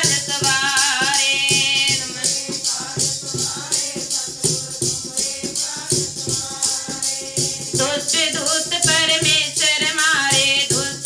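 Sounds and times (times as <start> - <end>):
jingling metal percussion: 0.0 - 11.0.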